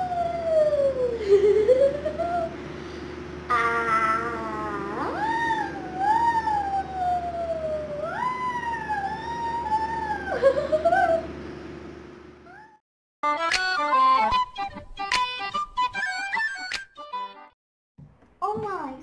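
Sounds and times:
electric fan humming: 0.0 - 12.8.

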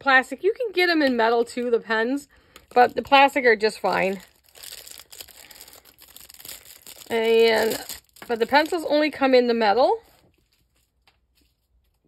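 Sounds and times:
plastic sleeve crinkling: 0.7 - 12.0.

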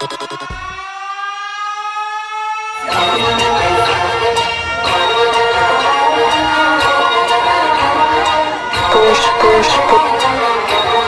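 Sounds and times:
rapid stutter of pulses: 0.0 - 1.3
rising siren-like tone: 0.0 - 4.0.

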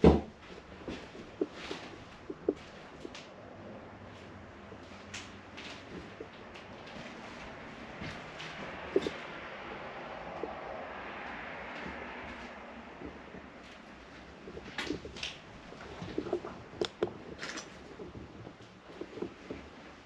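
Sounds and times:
light clicks and knocks: 0.0 - 3.4, 4.1 - 20.0
road traffic passing: 0.0 - 20.0.

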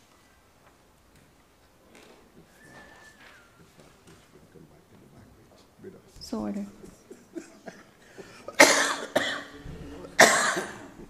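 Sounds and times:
person coughing: 7.1 - 11.0.

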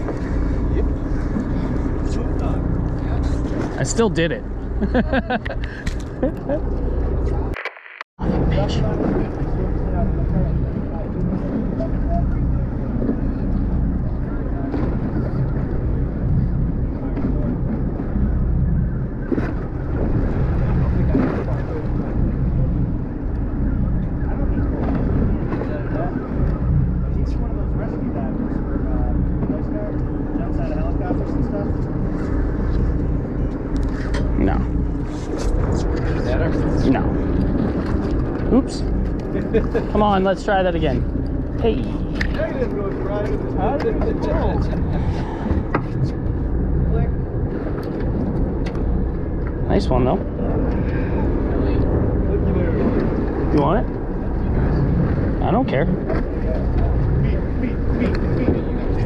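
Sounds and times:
boat engine running: 0.0 - 7.6, 8.2 - 59.0
muffled voices: 49.7 - 59.0.

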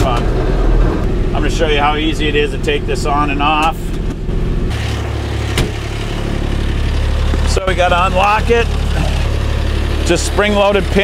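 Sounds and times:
diesel engine idling: 0.0 - 11.0
cab door shutting: 5.5 - 5.8.

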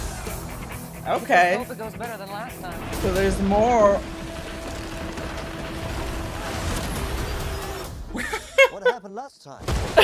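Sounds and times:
wooden dock breaking: 4.0 - 7.4.

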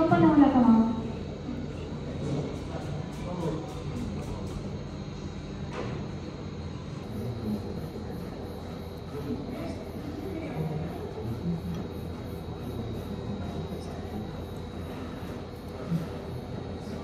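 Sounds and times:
faint indistinct voices: 0.0 - 17.0.

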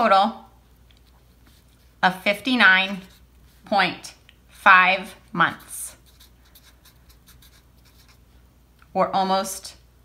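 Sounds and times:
marker pen scratching on paper: 1.0 - 3.8, 5.4 - 8.3.

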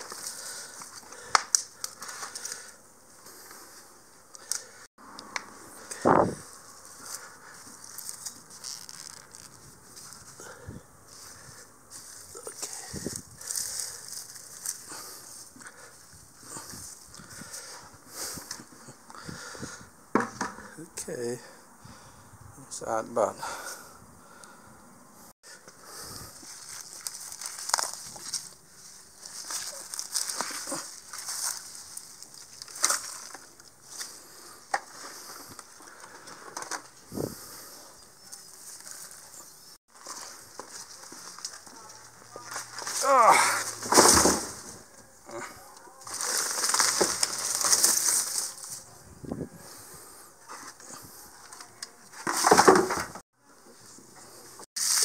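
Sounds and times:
weeds rustling and tearing: 5.8 - 18.6, 26.0 - 36.4, 37.1 - 44.8, 46.0 - 49.0, 54.8 - 55.0.

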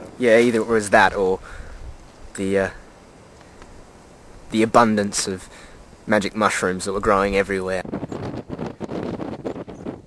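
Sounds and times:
wind buffeting microphone: 0.0 - 2.9, 3.6 - 10.0.

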